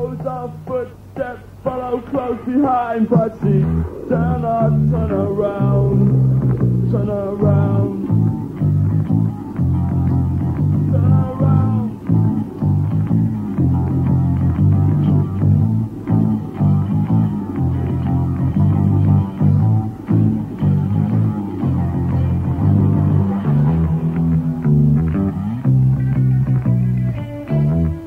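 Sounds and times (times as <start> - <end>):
bass guitar line: 0.0 - 28.0
wavering higher line: 3.1 - 25.5
live band playing: 3.3 - 28.0.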